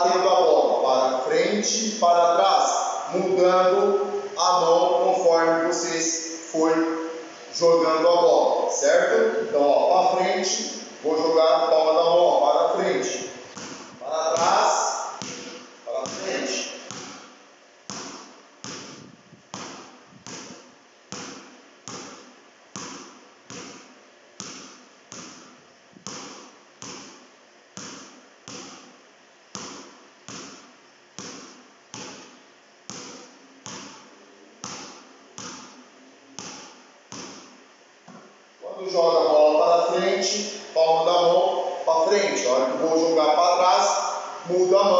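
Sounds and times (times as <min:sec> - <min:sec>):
basketball bouncing on concrete: 0:13.5 - 0:38.4.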